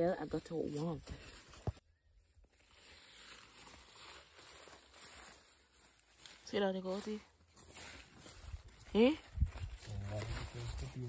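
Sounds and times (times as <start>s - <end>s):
hands digging through soil: 2.4s - 11.0s.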